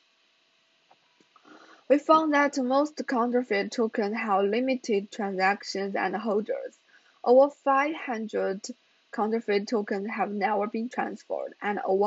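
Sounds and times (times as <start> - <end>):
soft breath drawn in: 1.4 - 1.9
woman speaking: 1.9 - 6.7, 7.3 - 12.0.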